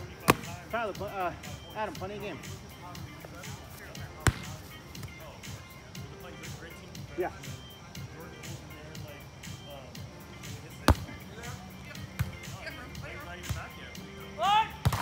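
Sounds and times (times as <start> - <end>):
volleyball hand smack: 0.2 - 0.5, 4.2 - 4.5
player shouting: 14.3 - 14.8.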